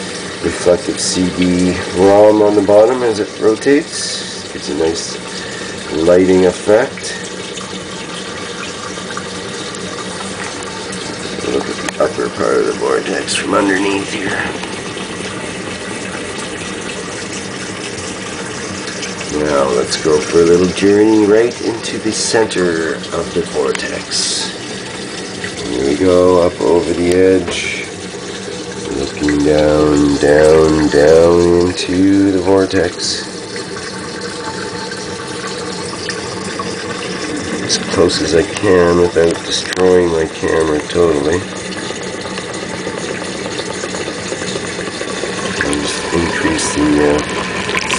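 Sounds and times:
faint steady hum: 0.0s - 47.9s
water rushing through turbine: 0.0s - 47.9s.

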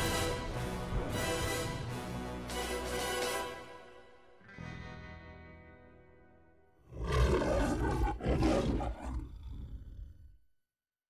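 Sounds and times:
music: 0.0s - 7.0s
lion roaring: 6.8s - 10.4s.

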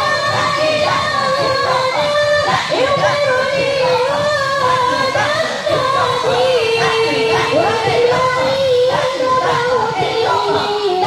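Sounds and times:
voices singing devotional chant: 0.0s - 11.0s.

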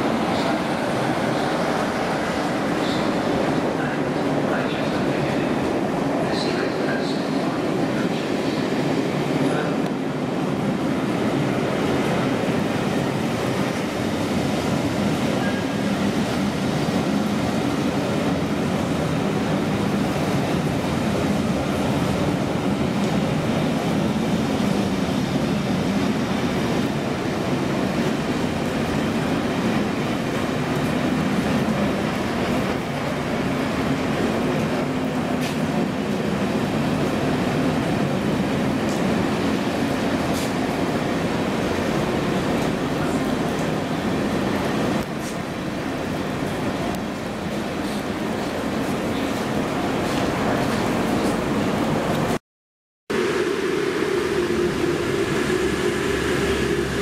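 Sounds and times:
train coaches rolling on track: 0.0s - 52.4s, 53.1s - 57.0s.

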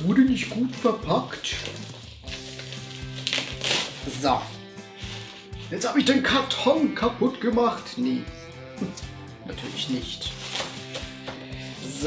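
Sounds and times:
bubble wrap crinkling: 0.0s - 5.7s, 9.6s - 12.0s
background music: 0.0s - 12.0s.

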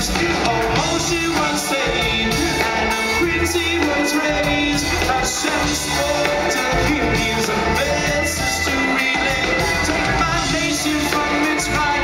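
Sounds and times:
live band playing: 0.0s - 12.0s
person singing: 0.0s - 12.0s.

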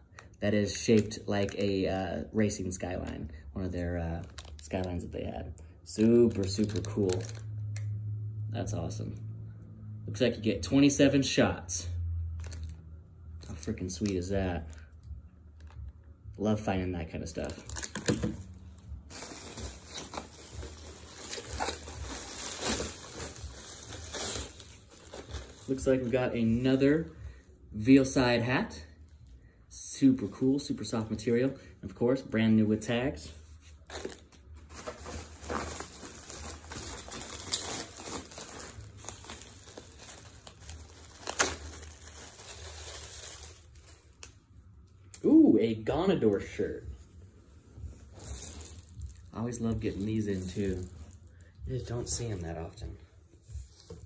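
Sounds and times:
plastic bag crinkling: 4.1s - 5.1s, 5.9s - 7.5s, 17.4s - 26.2s, 33.8s - 44.3s, 48.0s - 52.7s.

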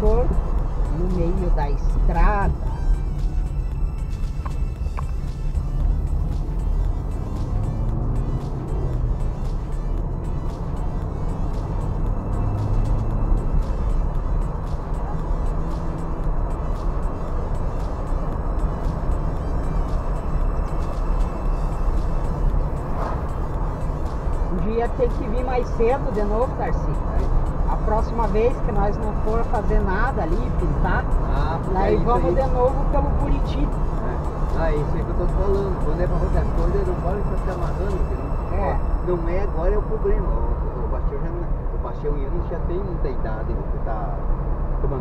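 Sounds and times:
car cabin road and engine rumble: 0.0s - 45.0s.

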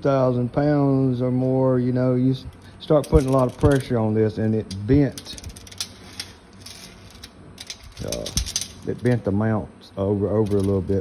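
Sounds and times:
tape measure clicks and rattles: 3.0s - 9.3s, 10.4s - 11.0s.

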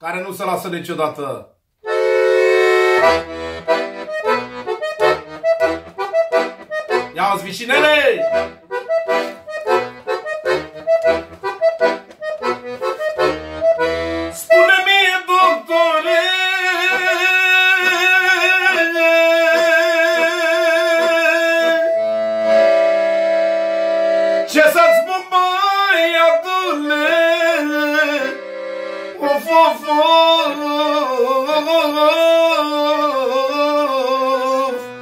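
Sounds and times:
piano accordion playing solo: 1.8s - 35.0s.

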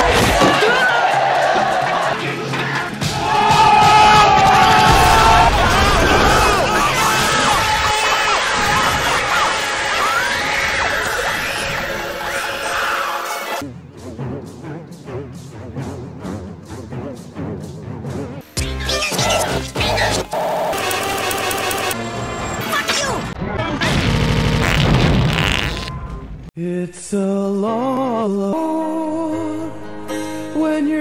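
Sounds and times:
crowd yelling and cheering: 0.0s - 13.6s.

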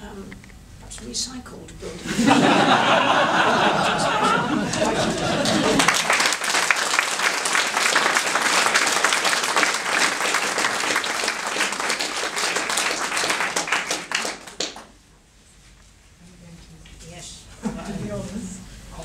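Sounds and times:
audience applauding: 2.4s - 15.0s.

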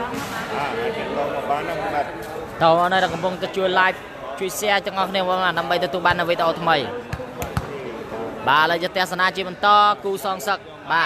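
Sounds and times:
volleyball thumps: 7.0s - 7.8s.

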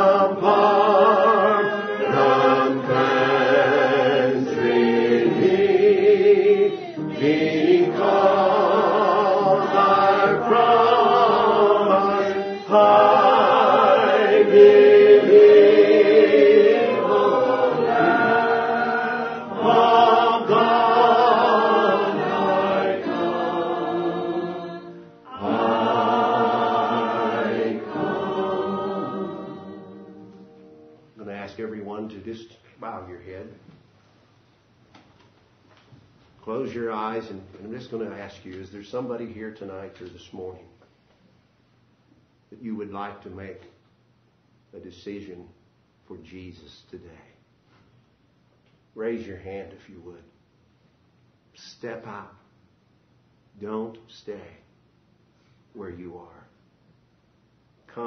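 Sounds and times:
voices singing a slow hymn: 0.0s - 31.0s.

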